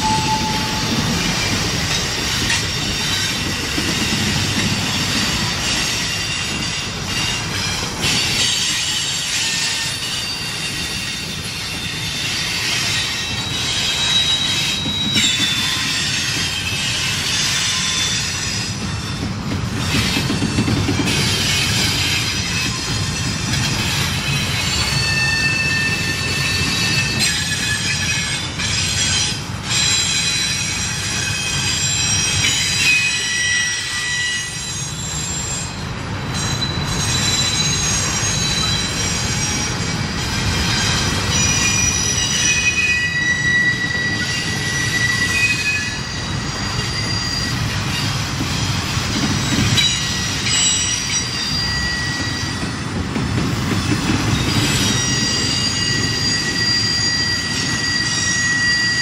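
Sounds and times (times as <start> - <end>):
rumble of wheels on track: 0.0 - 59.0
train wheels squealing: 0.0 - 59.0.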